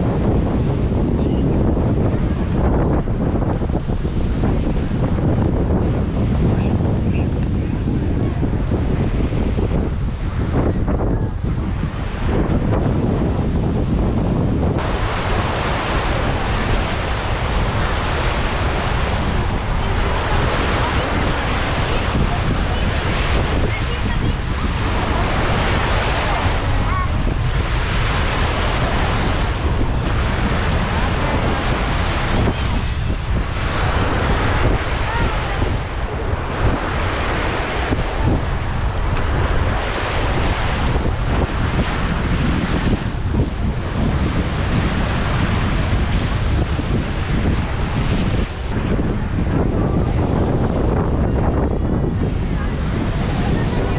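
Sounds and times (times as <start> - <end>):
sea waves washing onto beach: 0.0 - 53.9
wind buffeting microphone: 0.0 - 53.9.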